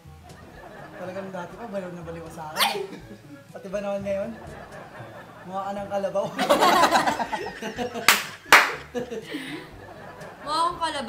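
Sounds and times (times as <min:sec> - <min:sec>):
people laughing: 0:00.1 - 0:11.0
loud hand claps: 0:08.0 - 0:09.0.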